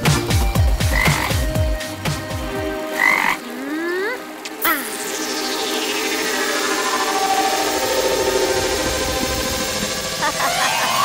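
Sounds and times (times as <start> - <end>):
cartoon frog croaking: 3.0 - 5.2
rising whistle-like glide: 5.1 - 11.0.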